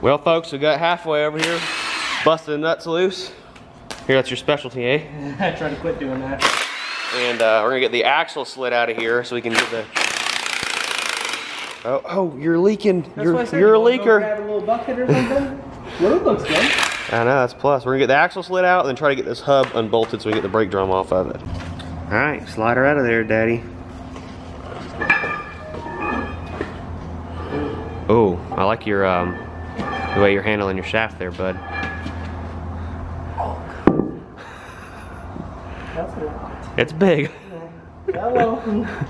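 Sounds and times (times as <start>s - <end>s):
steady low hum: 0.0s - 39.0s
impact wrench hammering: 6.4s - 7.5s, 9.5s - 11.9s, 33.8s - 34.3s
metal shaft clinking and scraping: 24.6s - 32.6s.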